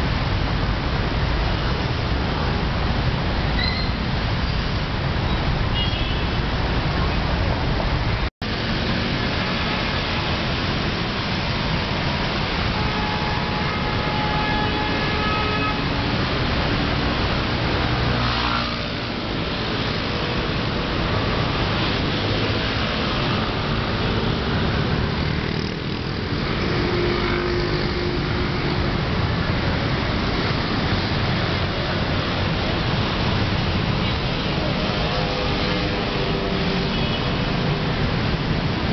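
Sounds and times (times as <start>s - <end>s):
city street traffic: 0.0s - 38.9s.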